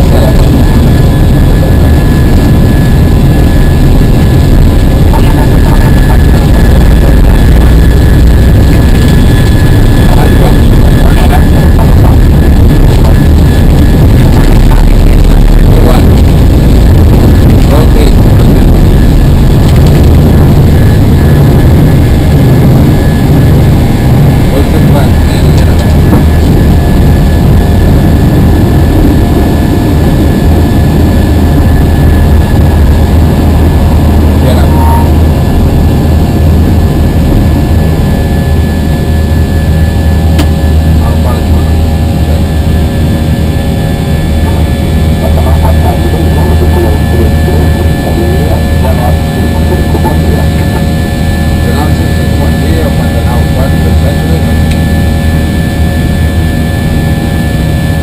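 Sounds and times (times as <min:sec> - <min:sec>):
jet engines at takeoff thrust: 0:00.0 - 0:58.0.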